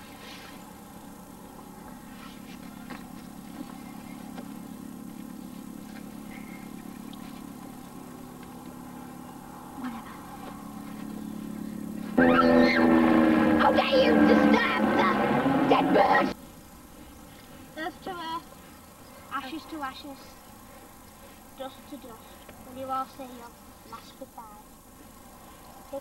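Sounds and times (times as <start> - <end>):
low engine hum: 0.0 - 26.0.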